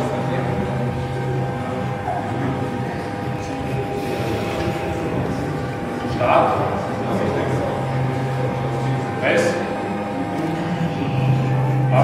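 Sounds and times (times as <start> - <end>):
low room noise rumble: 0.0 - 12.0.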